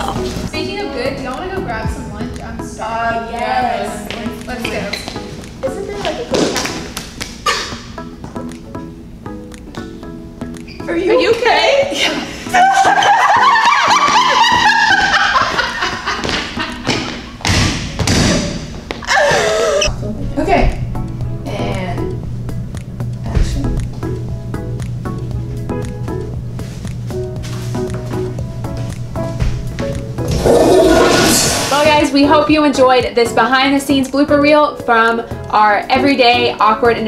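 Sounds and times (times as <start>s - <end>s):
background music: 0.0s - 37.0s
woman speaking: 21.4s - 22.2s, 31.7s - 37.0s
toilet flushing: 30.3s - 32.0s.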